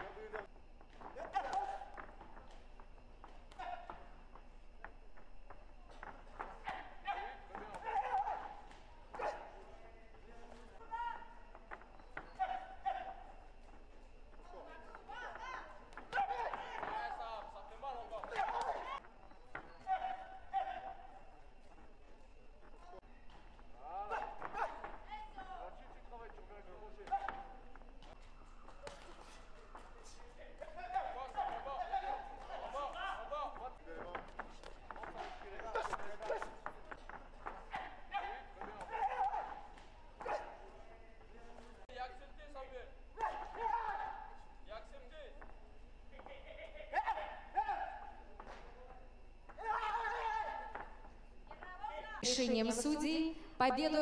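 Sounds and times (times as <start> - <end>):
voices calling out in echoing hall: 0.0 - 54.0.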